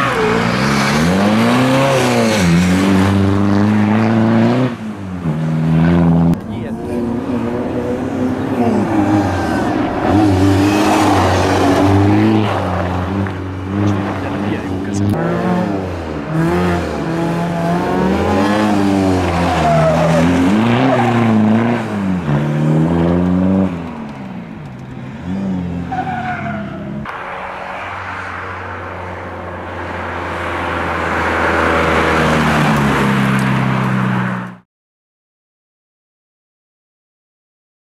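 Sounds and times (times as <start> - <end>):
rally car engine revving: 0.0 - 34.5.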